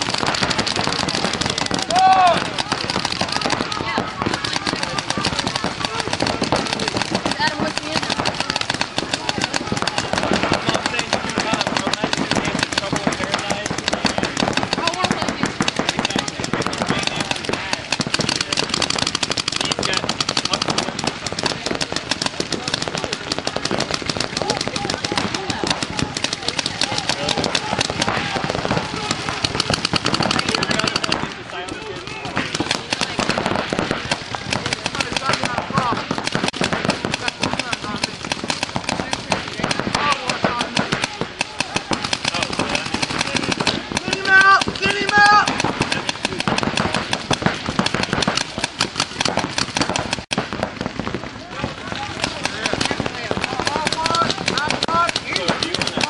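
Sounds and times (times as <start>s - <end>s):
people shouting: 0.0s - 50.1s, 51.3s - 56.0s
rapid paintball gun pops: 0.0s - 56.0s.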